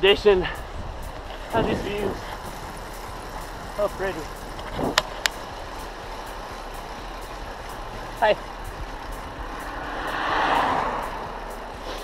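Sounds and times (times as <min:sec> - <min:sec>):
vehicle passing on road: 0:00.0 - 0:12.0
wind and riding noise: 0:00.0 - 0:12.0.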